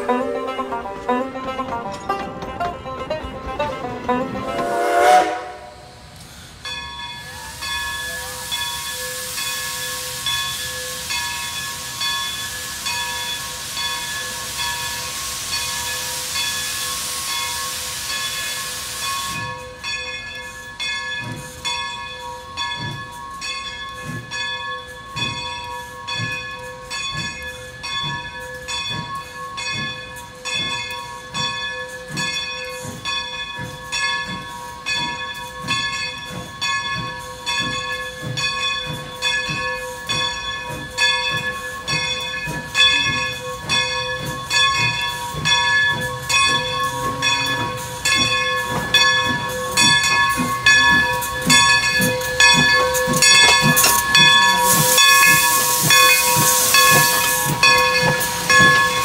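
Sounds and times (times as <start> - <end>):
locomotive bell ringing: 0.0 - 6.0, 6.6 - 59.0
steam locomotive exhaust chuffs: 0.0 - 59.0
steam venting hiss: 4.5 - 19.9, 24.9 - 59.0.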